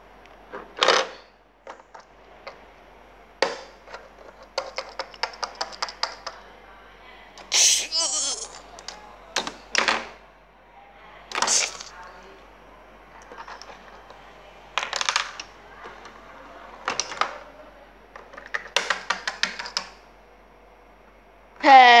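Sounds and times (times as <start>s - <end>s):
plastic toys clicking together: 3.4s - 6.4s, 14.8s - 15.5s, 18.2s - 20.0s.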